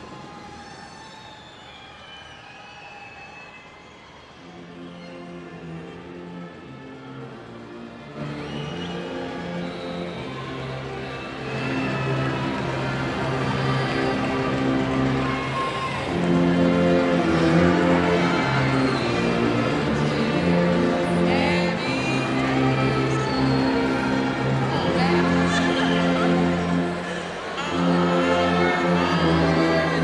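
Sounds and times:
concert band sustained chords: 4.5 - 30.0.

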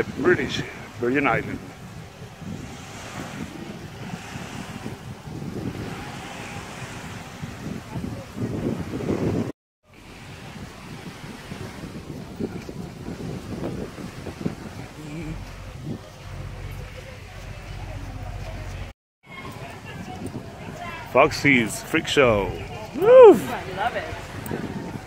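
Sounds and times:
surf washing onto beach: 0.0 - 25.0
wind buffeting microphone: 0.0 - 25.0
faint voices: 13.9 - 25.0.

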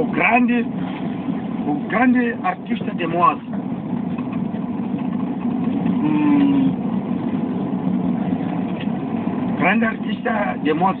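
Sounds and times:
car engine and road noise: 0.0 - 11.0
short low tone: 5.9 - 6.8.

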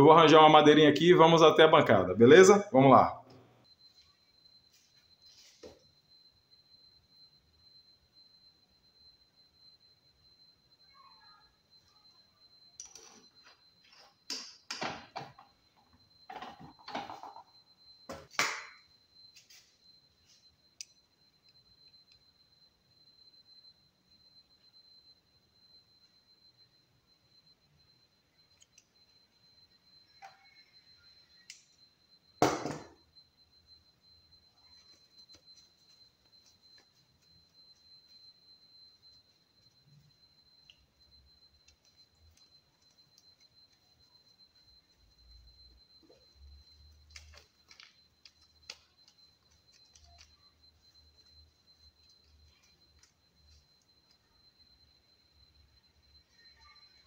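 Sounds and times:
faint high-pitched whine: 0.0 - 57.0.

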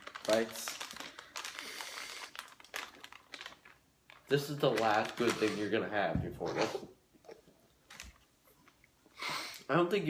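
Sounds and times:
plastic packaging crinkling: 0.0 - 6.1.

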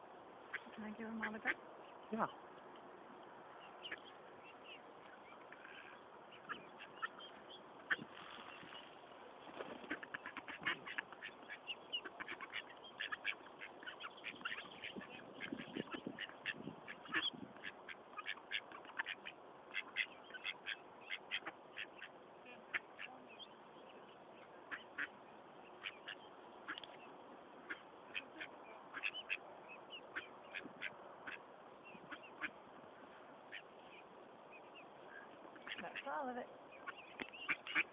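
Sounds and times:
ducks quacking: 0.5 - 2.3, 3.8 - 8.8, 9.6 - 23.6, 24.4 - 27.0, 27.6 - 32.6, 33.5 - 34.0, 35.2 - 37.9
ducklings peeping: 0.5 - 2.4, 3.6 - 32.7, 33.4 - 37.9.

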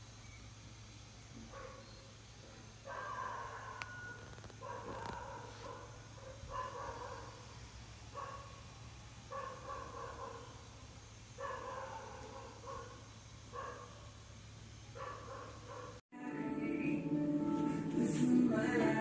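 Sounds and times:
dog barking: 1.5 - 1.9, 2.8 - 7.5, 8.1 - 8.6, 9.3 - 10.6, 11.4 - 14.1, 15.0 - 16.0.

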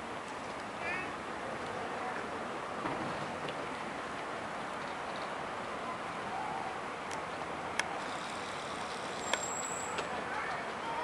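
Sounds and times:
outdoor traffic noise: 0.0 - 11.0.

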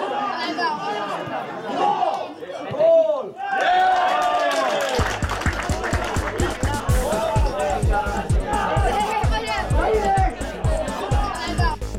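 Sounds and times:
spectators talking and calling out: 0.0 - 3.4, 5.2 - 11.9.

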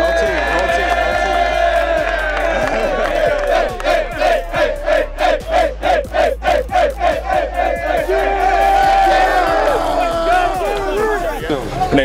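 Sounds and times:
young men chanting and yelling: 0.0 - 12.0
hand clapping: 0.4 - 4.1.

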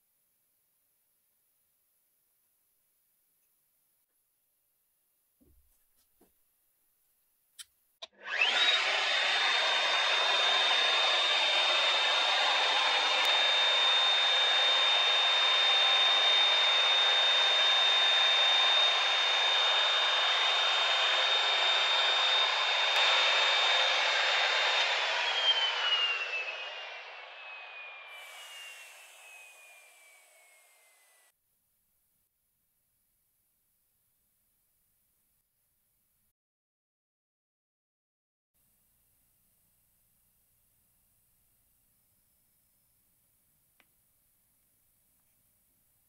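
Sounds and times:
router whining while cutting wood: 8.0 - 31.3.

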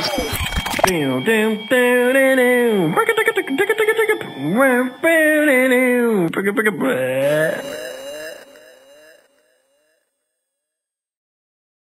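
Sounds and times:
rising pitched notes: 0.0 - 9.2
processed laughing voice: 6.4 - 9.4.

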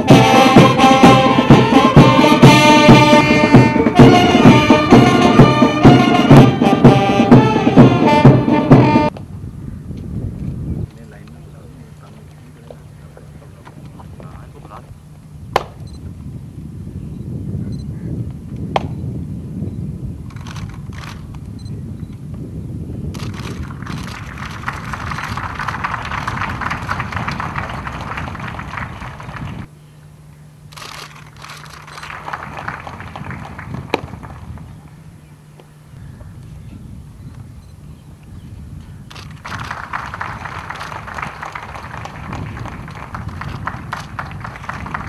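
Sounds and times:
low outdoor rumble: 0.0 - 45.0
crowd applauding: 23.5 - 29.7, 31.7 - 34.6, 39.5 - 45.0.

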